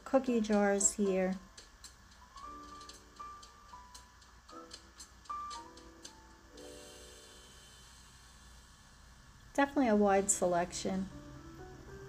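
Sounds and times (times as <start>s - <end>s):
light ticking beat: 0.3s - 6.8s.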